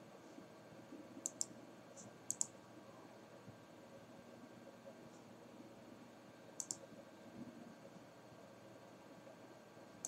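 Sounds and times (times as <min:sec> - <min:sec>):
faint room hum: 0:00.0 - 0:10.0
computer mouse button clicks: 0:06.6 - 0:06.8.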